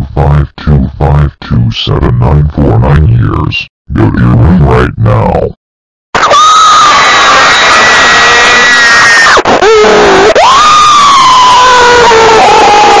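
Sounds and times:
high-pitched cartoon scream: 0:06.2 - 0:13.0.

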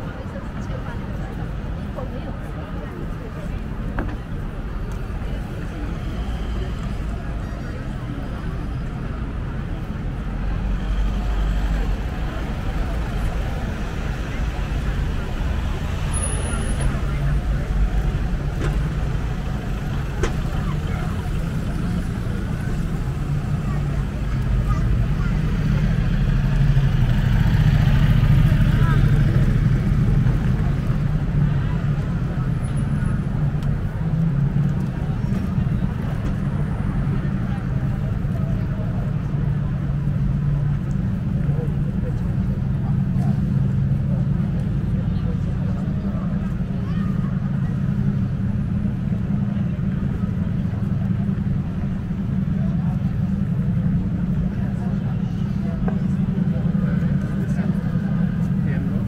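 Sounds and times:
cars passing: 0:00.0 - 0:59.0
pedestrians hubbub: 0:00.0 - 0:59.0.

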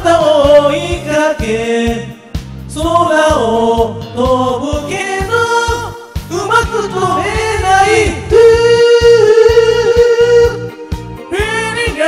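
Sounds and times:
backing music with drum beat: 0:00.0 - 0:12.0.

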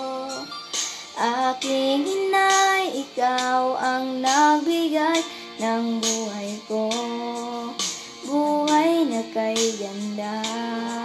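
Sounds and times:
girl singing: 0:00.0 - 0:11.0.

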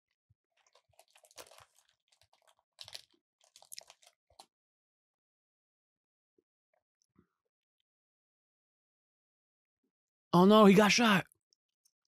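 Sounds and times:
crackling and crunching: 0:00.5 - 0:04.5.

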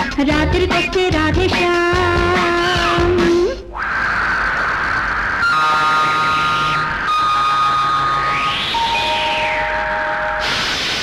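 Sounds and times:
synthesizer tones and chords: 0:02.8 - 0:10.4.

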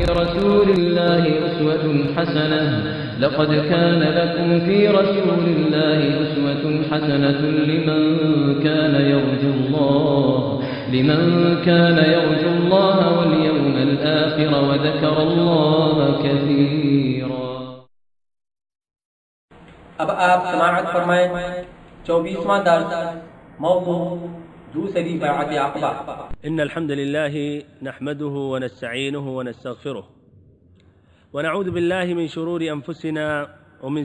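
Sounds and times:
melodic religious chanting: 0:00.0 - 0:17.8.

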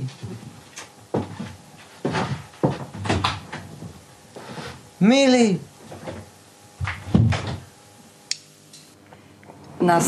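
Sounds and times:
dull knocks on wood and metal: 0:02.0 - 0:03.6.

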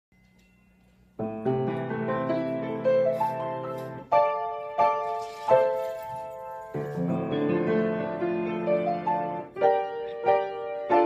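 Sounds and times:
grand piano chords: 0:00.3 - 0:11.0.

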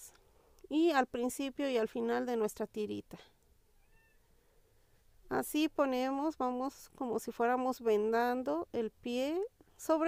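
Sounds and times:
faint cat meow: 0:03.8 - 0:04.3.

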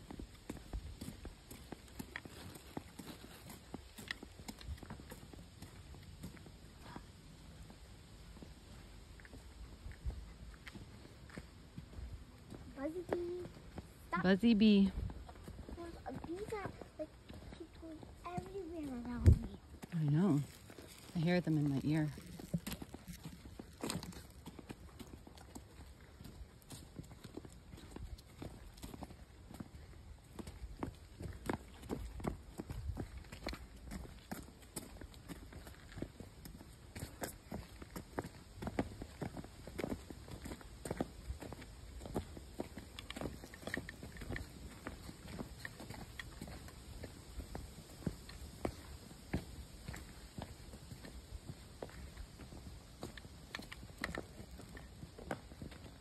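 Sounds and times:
footsteps on trail: 0:00.0 - 0:56.0.

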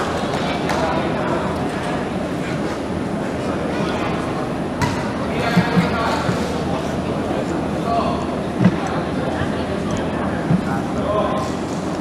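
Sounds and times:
reverberant sports hall ambience: 0:00.0 - 0:12.0.

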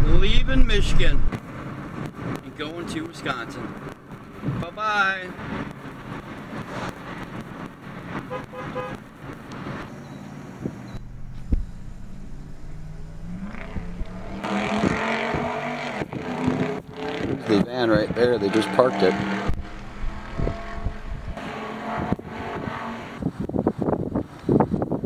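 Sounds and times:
car engine idling: 0:03.6 - 0:15.2, 0:19.4 - 0:21.4.

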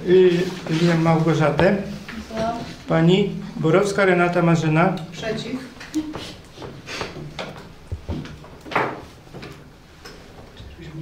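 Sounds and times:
knocks and rustles: 0:06.2 - 0:10.7.

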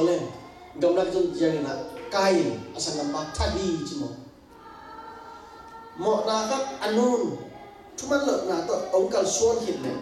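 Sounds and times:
faint choir-like singing: 0:00.0 - 0:10.0.

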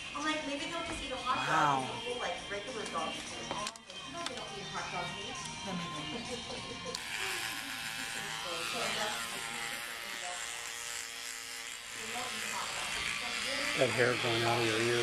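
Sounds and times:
electric hair clippers buzzing: 0:06.9 - 0:15.0.

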